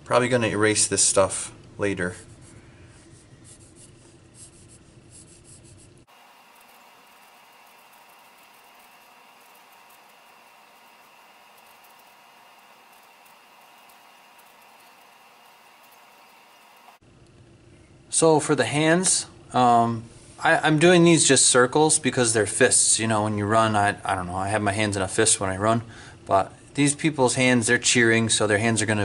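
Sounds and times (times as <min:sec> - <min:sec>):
steady room hiss: 0:00.0 - 0:29.0
pencil scratching on paper: 0:02.2 - 0:16.1.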